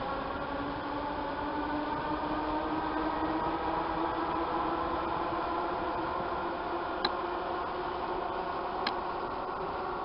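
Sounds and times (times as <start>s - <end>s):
electric train running on track: 0.0s - 10.0s.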